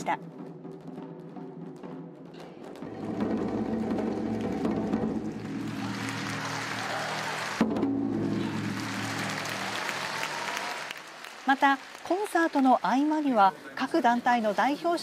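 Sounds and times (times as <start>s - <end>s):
rapid drumming: 0.0s - 13.2s.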